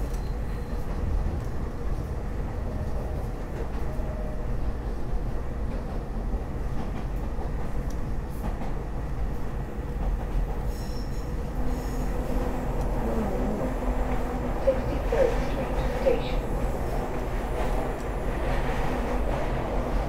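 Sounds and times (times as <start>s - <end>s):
train wheels rumbling on rail: 0.0s - 20.0s
train wheel squeals: 10.6s - 12.5s.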